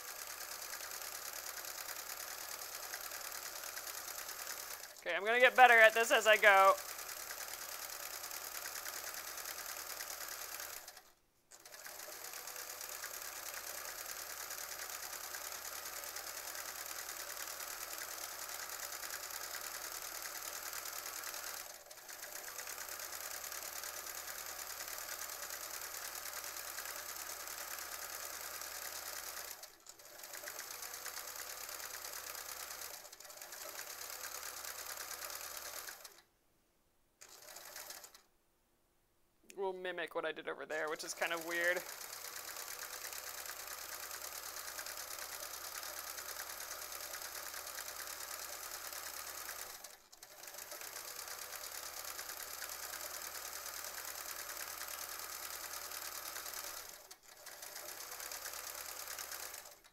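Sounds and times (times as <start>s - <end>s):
sewing machine stitching: 0.0s - 36.3s, 37.2s - 38.3s, 40.7s - 59.9s.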